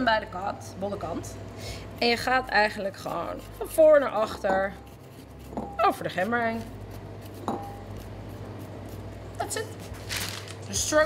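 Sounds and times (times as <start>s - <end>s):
spoon scraping ginger skin: 2.0s - 10.1s.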